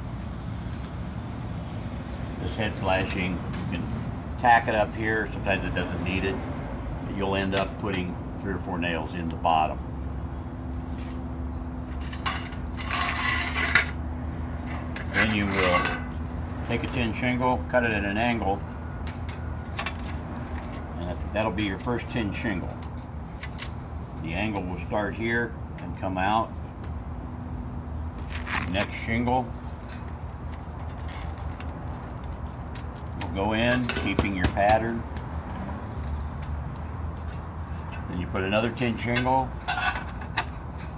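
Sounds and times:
shingle scraping: 11.9s - 16.5s.

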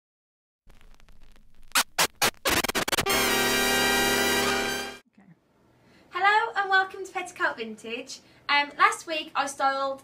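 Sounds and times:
vinyl crackle: 0.6s - 3.3s
record scratching: 0.7s - 3.7s.

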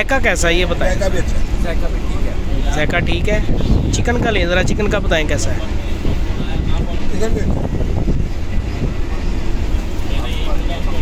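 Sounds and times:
passenger train rumbling: 0.0s - 11.0s.

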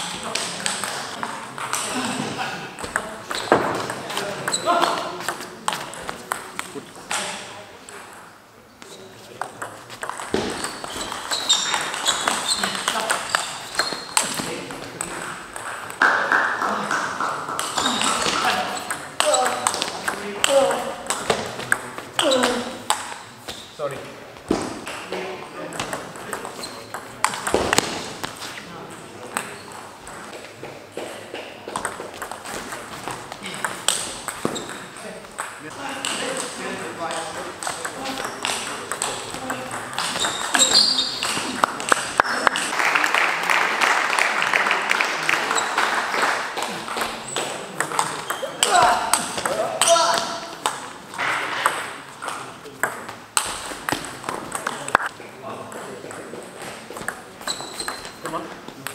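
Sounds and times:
voices talking in a hall: 0.0s - 58.9s.

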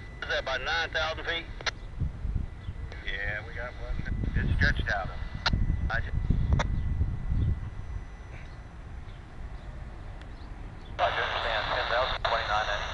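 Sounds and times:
voice over scanner radio: 0.2s - 1.6s, 3.0s - 5.3s, 11.0s - 12.9s
low rumble: 1.4s - 12.4s.

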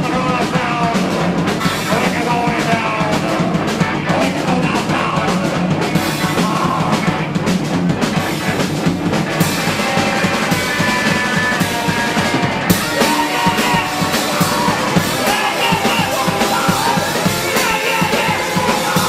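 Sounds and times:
electric guitars: 0.0s - 19.0s
pounding drum kit: 0.0s - 19.0s.

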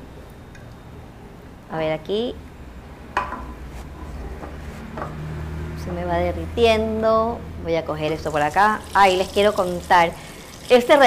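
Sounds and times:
low steady hum: 0.0s - 11.0s
frying pan knocking on hot plate: 3.2s - 3.6s.

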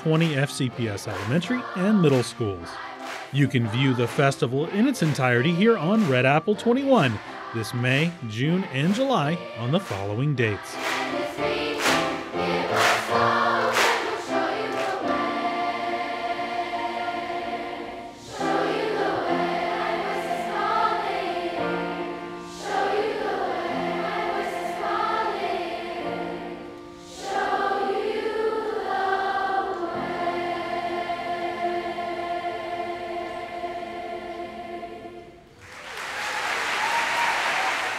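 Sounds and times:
children's choir singing: 0.0s - 35.6s.

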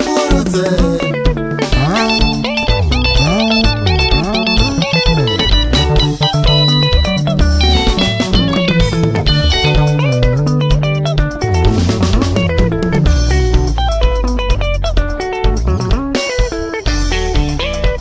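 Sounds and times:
bass guitar line: 0.0s - 18.0s
electric lead guitar runs: 0.0s - 18.0s
rhythm guitar: 0.0s - 18.0s
steady drum beat: 0.0s - 18.0s.

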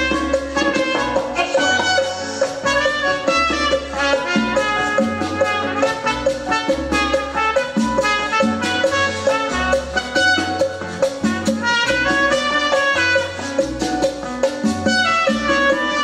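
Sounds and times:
latin band playing: 0.0s - 16.0s.

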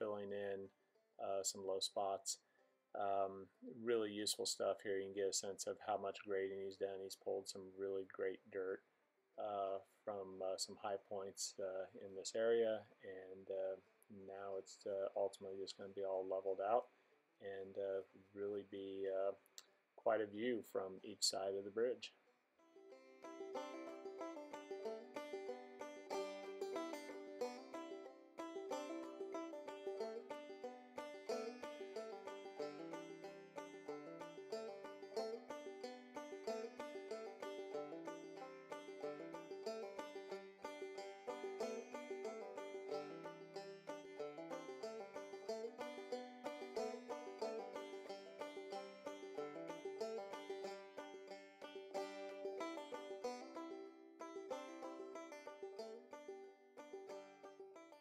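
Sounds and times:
fast-picked banjo tune: 22.8s - 58.0s.

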